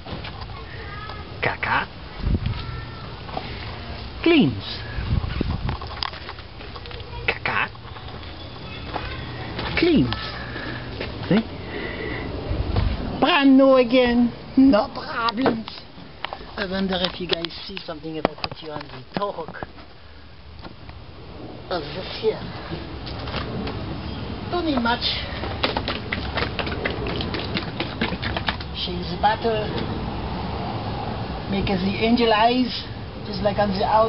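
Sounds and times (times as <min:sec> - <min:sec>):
man speaking: 0:04.2 - 0:05.0, 0:09.7 - 0:10.5, 0:13.2 - 0:15.9
footsteps on gritty driveway: 0:05.2 - 0:11.6, 0:24.6 - 0:30.0.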